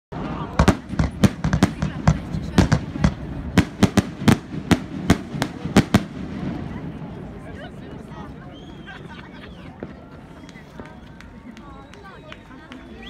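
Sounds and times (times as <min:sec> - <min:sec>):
fireworks bangs: 0:00.1 - 0:07.4.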